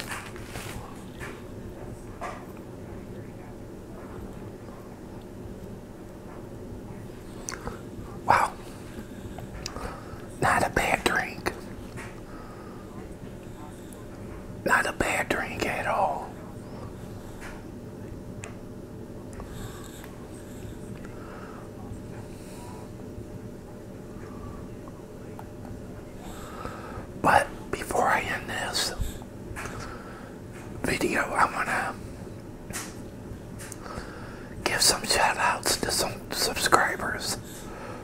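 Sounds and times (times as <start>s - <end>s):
man whispering: 7.2s - 17.6s, 24.0s - 29.9s, 30.8s - 32.2s, 33.8s - 38.0s.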